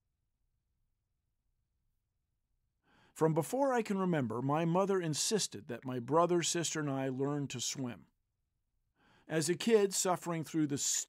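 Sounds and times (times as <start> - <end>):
faint intake of breath: 9.0 - 9.3.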